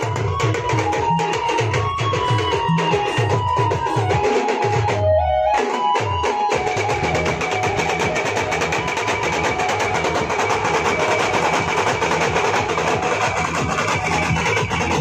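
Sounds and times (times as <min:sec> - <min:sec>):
drums beaten with sticks: 0:00.0 - 0:15.0.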